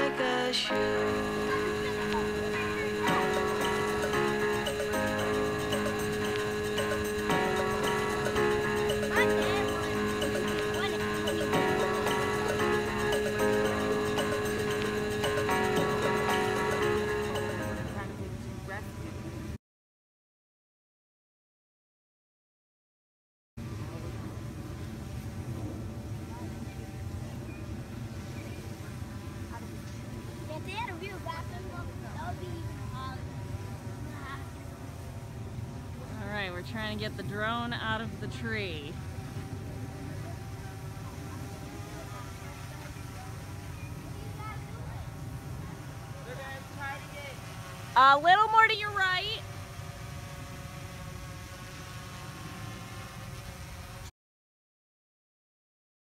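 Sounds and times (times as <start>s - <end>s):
drone propellers buzzing: 0.0s - 18.4s, 45.0s - 54.1s.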